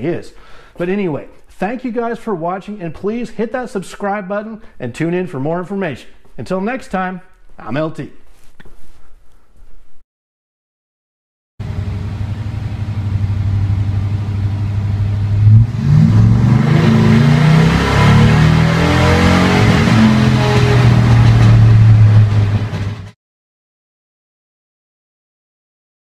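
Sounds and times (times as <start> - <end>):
truck engine accelerating: 11.6 - 23.2.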